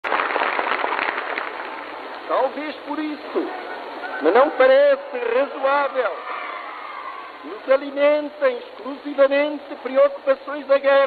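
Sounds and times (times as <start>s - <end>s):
crackling on old recording: 0.0s - 4.4s.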